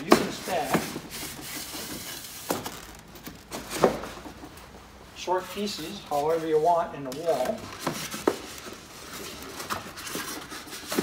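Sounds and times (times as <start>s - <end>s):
foam rubbing scrape: 0.0s - 2.5s.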